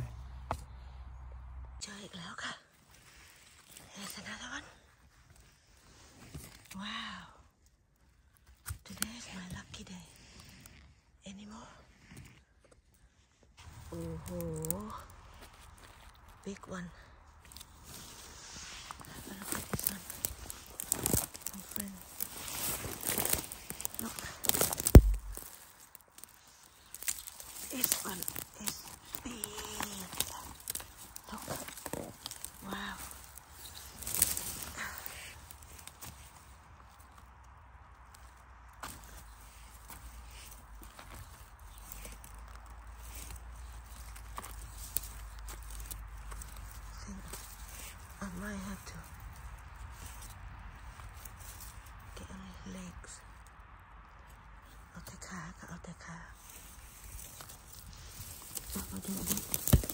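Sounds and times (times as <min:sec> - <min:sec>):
dry pine needles rustling: 0:00.0 - 0:59.9.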